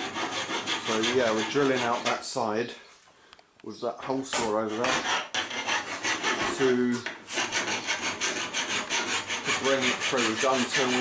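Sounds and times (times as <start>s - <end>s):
hand file rasping: 0.0s - 2.3s, 4.3s - 11.0s.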